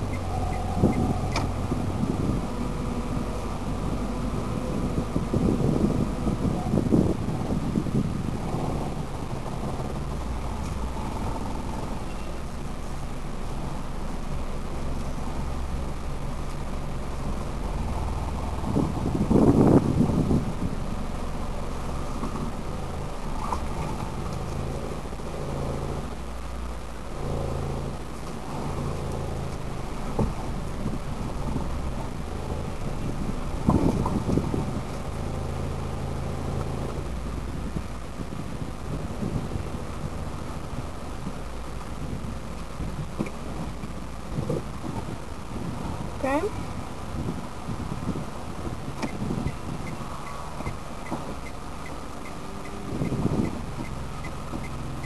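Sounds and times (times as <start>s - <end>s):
car engine from inside cabin: 0.0s - 55.0s
road noise: 0.0s - 55.0s.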